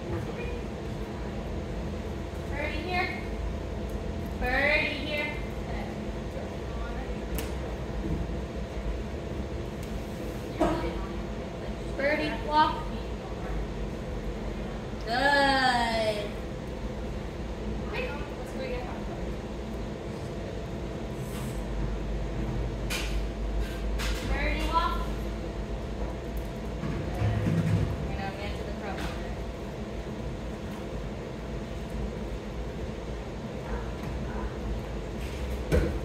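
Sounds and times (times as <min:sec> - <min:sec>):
low room hum: 0:00.0 - 0:36.0.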